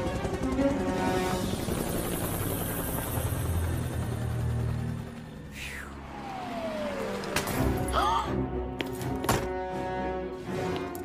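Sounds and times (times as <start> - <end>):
helicopter rotor: 0.0 - 8.0
background music: 0.0 - 11.0.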